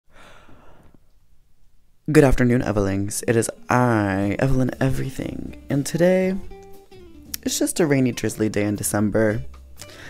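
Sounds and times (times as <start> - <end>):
person breathing: 0.1 - 1.1, 9.8 - 10.0.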